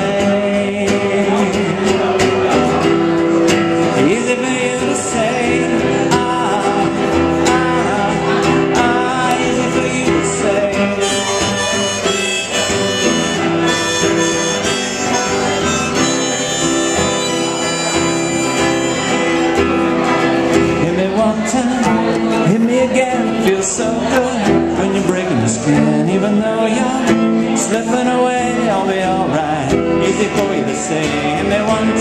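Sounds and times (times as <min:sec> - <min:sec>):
acoustic guitar: 0:00.0 - 0:32.0
harmonica long held notes: 0:10.7 - 0:20.1.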